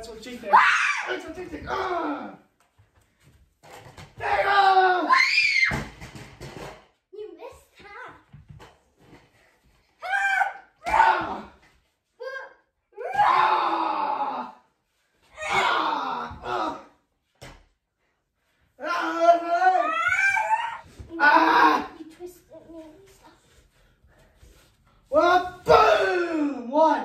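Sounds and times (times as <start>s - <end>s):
person yelling: 18.8s - 22.0s.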